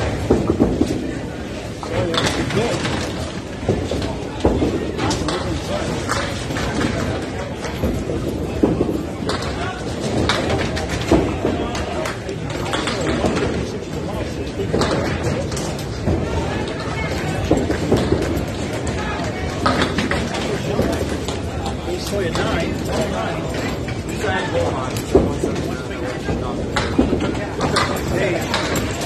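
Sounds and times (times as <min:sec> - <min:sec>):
balls knocking pins: 0:00.0 - 0:29.0
bowling balls rolling on wooden lanes: 0:00.0 - 0:29.0
voices in a hall: 0:00.0 - 0:29.0.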